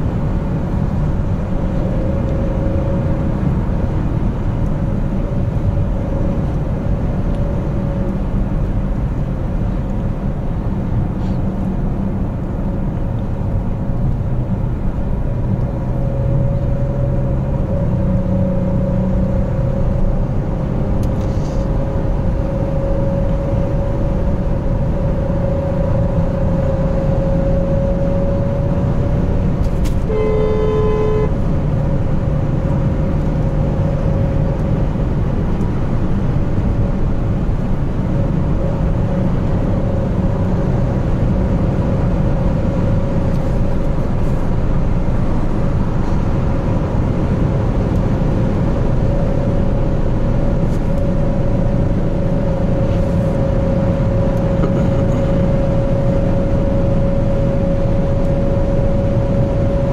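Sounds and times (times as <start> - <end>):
car engine and road noise: 0.0 - 59.9
car horn: 29.9 - 31.5.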